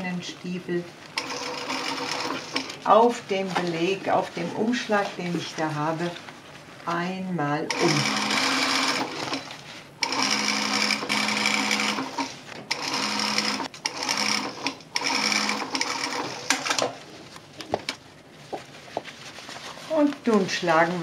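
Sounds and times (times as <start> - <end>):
sewing machine stitching: 1.2 - 2.8, 7.7 - 17.0.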